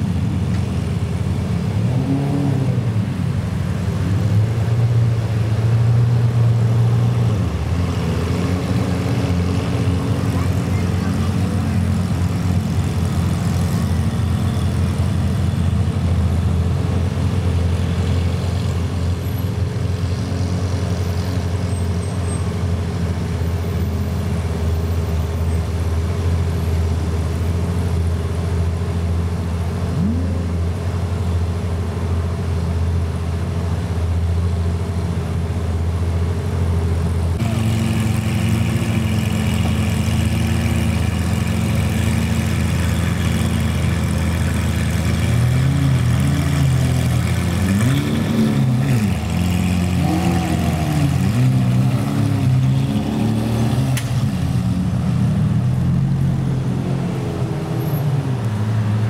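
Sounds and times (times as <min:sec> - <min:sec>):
car engine revving: 0:37.4 - 0:59.0.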